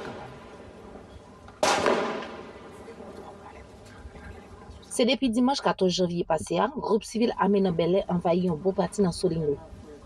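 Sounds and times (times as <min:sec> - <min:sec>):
gunshot echoing: 0:01.6 - 0:03.1.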